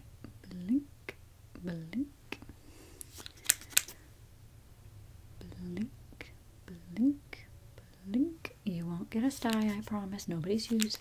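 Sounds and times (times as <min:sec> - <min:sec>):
plastic tube clicks: 0:03.0 - 0:04.0.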